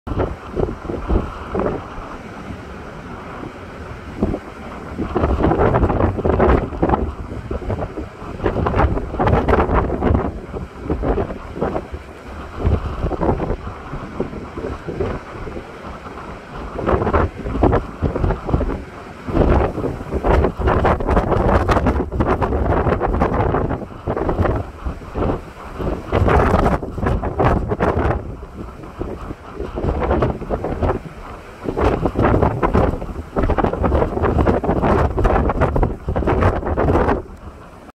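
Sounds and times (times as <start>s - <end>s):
heavy surf breaking on rocks: 0.1s - 37.9s
wind buffeting microphone: 0.1s - 37.9s.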